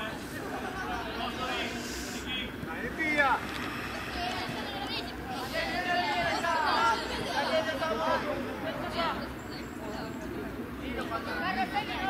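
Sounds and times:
low outdoor background noise: 0.0s - 12.0s
people calling and chattering: 0.0s - 12.0s.

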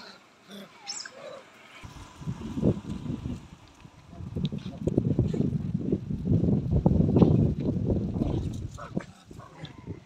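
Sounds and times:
wind buffeting microphone: 1.8s - 10.0s.

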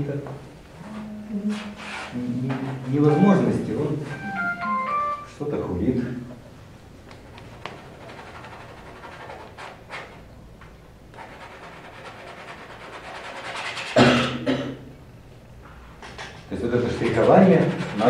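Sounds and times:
palette knife scraping canvas: 1.5s - 2.2s, 16.8s - 18.0s
man's voice: 2.2s - 4.4s.

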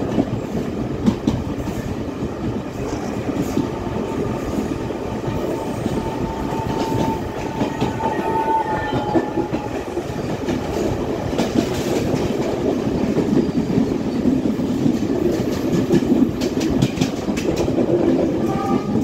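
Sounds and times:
train rumble: 0.0s - 19.0s
wheels clacking over rail joints: 5.8s - 19.0s.

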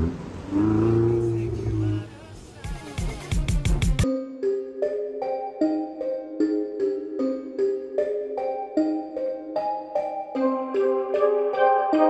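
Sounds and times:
car engine pulling away: 0.0s - 2.4s.

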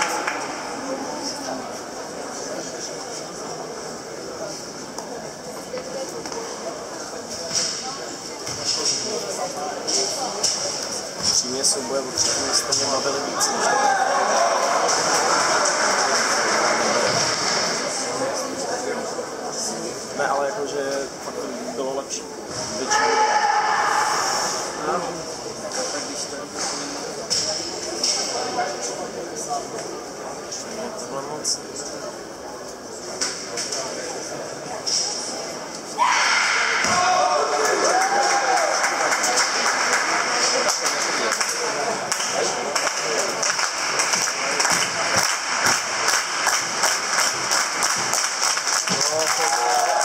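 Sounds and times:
murmur of spectators: 0.0s - 50.0s.

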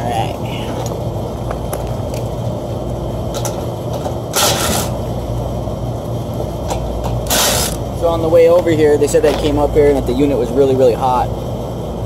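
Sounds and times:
air conditioning unit humming: 0.0s - 12.0s.

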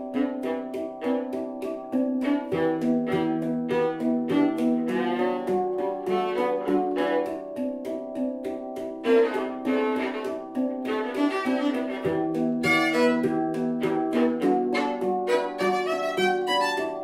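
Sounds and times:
handpan hand taps: 0.0s - 17.0s.

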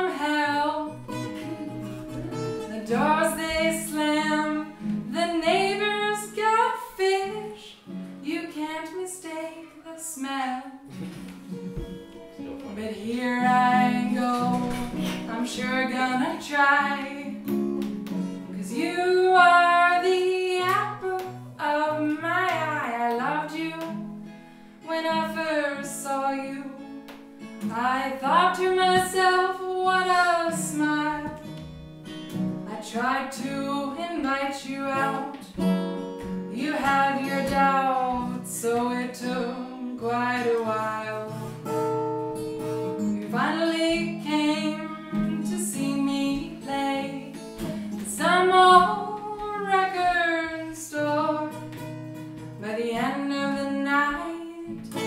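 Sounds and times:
acoustic guitar playing: 0.0s - 55.0s
woman singing folk song: 0.0s - 55.0s.

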